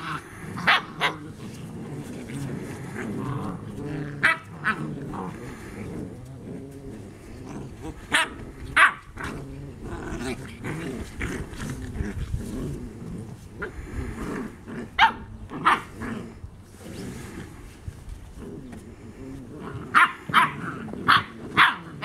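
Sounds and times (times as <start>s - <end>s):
puppies play-growling: 0.0s - 22.0s
puppy barks high-pitched: 8.2s - 9.0s, 15.0s - 15.8s, 20.0s - 21.9s.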